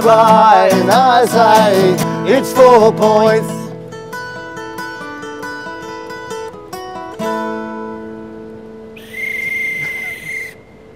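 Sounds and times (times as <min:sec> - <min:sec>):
acoustic guitar picking: 0:00.0 - 0:09.0
long whistle blast: 0:09.0 - 0:10.8.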